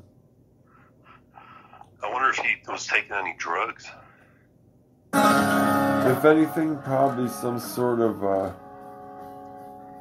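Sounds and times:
person breathing faintly: 0.6s - 2.0s.

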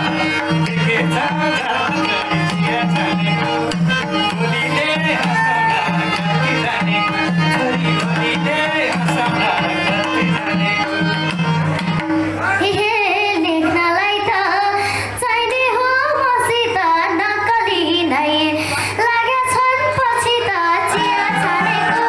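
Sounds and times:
amplified instrumental accompaniment: 0.0s - 13.2s
girl singing folk melody: 12.6s - 22.0s.

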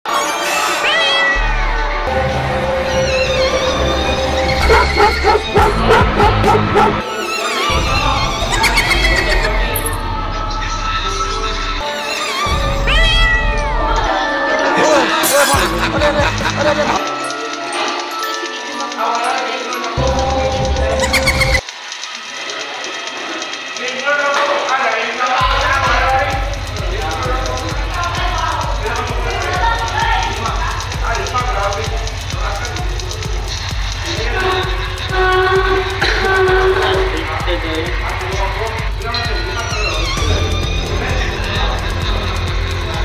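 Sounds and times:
background music with bass beat: 1.6s - 7.1s, 15.1s - 17.0s, 25.4s - 43.0s.

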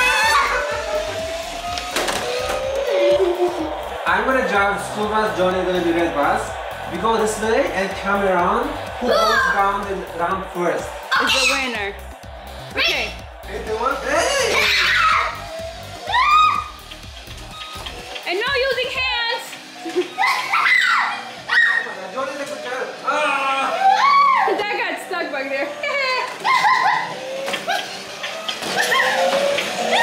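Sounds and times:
background music: 0.0s - 30.0s
people shouting and laughing: 0.0s - 30.0s.

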